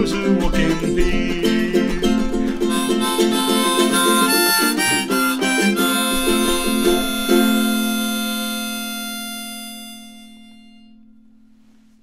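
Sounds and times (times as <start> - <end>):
ukulele strumming: 0.0 - 11.8.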